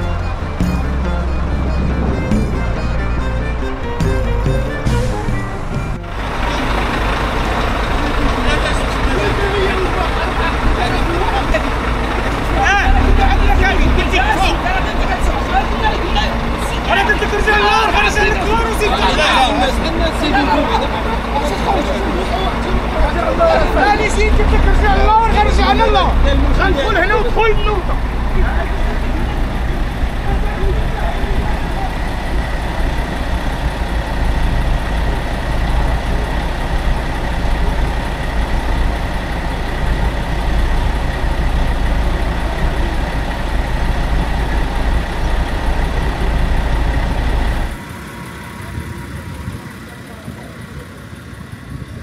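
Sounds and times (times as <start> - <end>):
lorry engines idling: 0.0 - 52.0
men's voices: 6.2 - 47.8.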